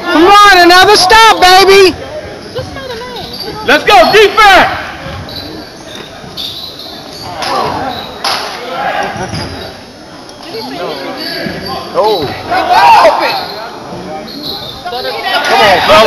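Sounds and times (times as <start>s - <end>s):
spectators shouting in a hall: 12.4s - 13.7s.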